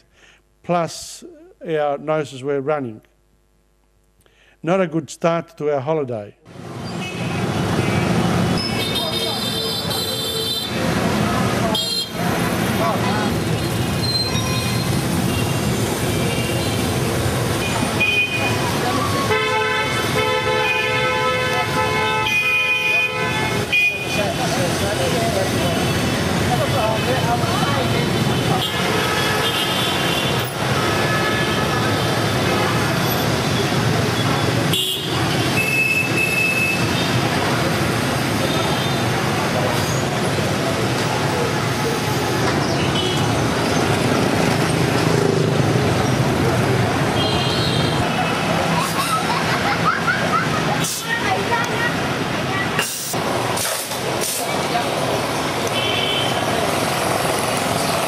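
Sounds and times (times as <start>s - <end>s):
scooters and cars passing: 6.5s - 58.0s
horns honking: 7.0s - 10.8s, 11.7s - 12.3s, 14.0s - 24.4s, 28.2s - 37.3s, 42.7s - 43.4s, 47.0s - 48.6s, 55.6s - 56.7s.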